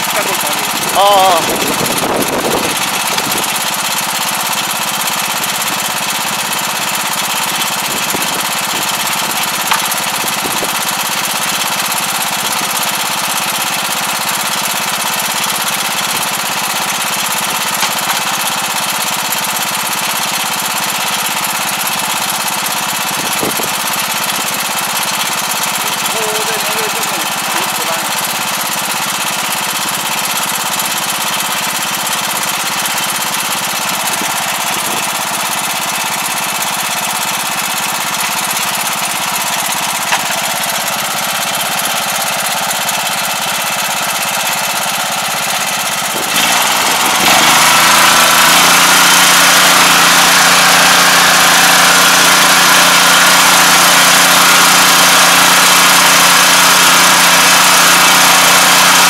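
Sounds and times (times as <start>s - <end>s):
engine running steadily: 0.0s - 59.0s.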